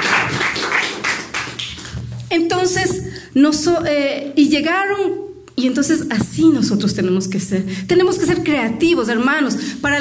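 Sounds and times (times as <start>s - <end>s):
congregation clapping in rhythm: 0.0s - 2.2s.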